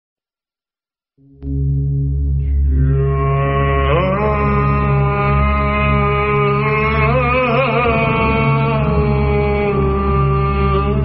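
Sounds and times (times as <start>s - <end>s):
deep chanting voice drone: 1.2s - 11.0s.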